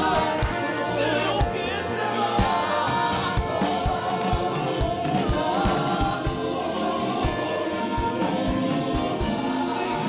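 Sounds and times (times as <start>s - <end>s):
man singing gospel song: 0.0s - 6.3s
voices singing along: 0.0s - 10.0s.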